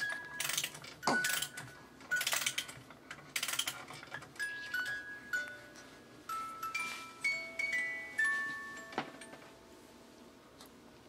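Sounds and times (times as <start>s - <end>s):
rapid clicking and rattling: 0.4s - 4.4s.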